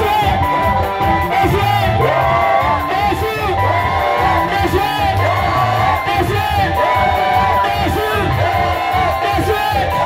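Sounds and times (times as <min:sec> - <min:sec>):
crowd singing and shouting: 0:00.0 - 0:10.0
live gospel music with heavy bass: 0:00.0 - 0:10.0.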